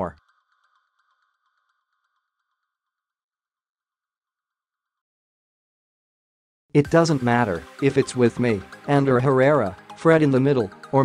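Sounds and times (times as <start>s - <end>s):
narrator's voice: 6.8s - 11.0s.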